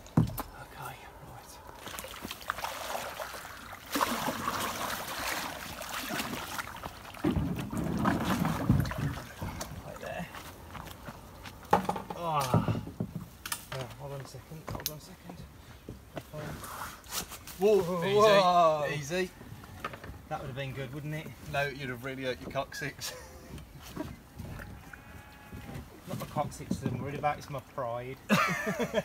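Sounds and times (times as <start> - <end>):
water sloshing: 0.0 - 14.6, 23.4 - 27.8
plastic kayak scraping on rocks: 4.1 - 10.7.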